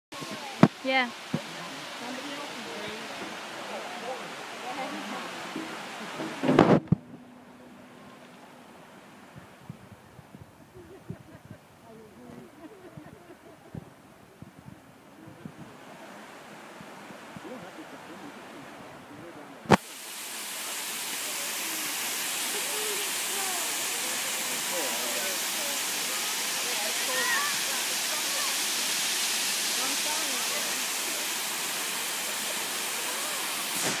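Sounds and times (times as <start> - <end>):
waterfall rushing: 0.1 - 10.6, 11.2 - 34.0
faint distant voices: 0.1 - 34.0.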